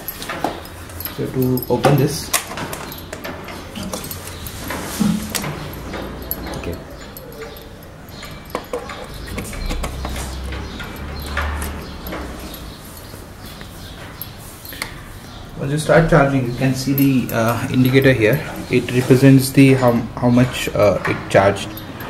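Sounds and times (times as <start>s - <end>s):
low handling rumble: 15.0s - 20.6s.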